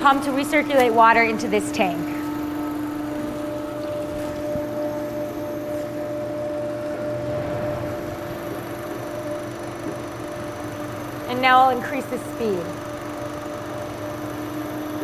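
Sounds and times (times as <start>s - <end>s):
pump motor humming: 0.0s - 15.0s.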